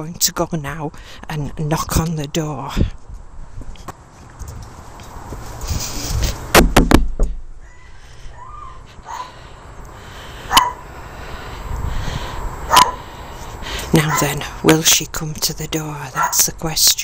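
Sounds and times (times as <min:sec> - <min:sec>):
dog barking: 0:09.0 - 0:09.4, 0:10.5 - 0:10.8, 0:12.7 - 0:13.0, 0:14.1 - 0:14.3, 0:16.2 - 0:16.4.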